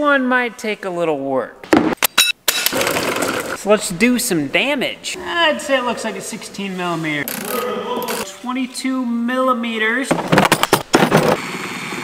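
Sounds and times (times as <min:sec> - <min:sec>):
loud irregular knocks and rattles: 0:10.1 - 0:11.4.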